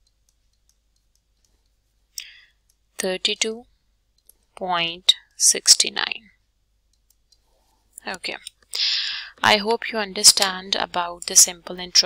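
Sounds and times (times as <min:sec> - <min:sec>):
person speaking: 0:03.0 - 0:03.7, 0:04.5 - 0:06.3, 0:08.0 - 0:12.0.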